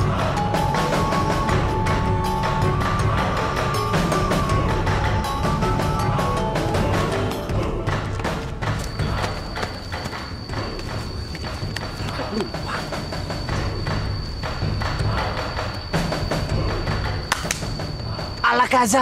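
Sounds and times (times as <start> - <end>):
drama soundtrack music: 0.0 - 19.0.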